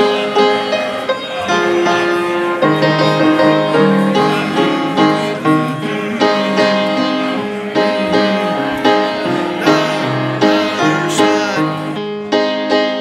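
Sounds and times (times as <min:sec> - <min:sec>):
piano music: 0:00.0 - 0:13.0.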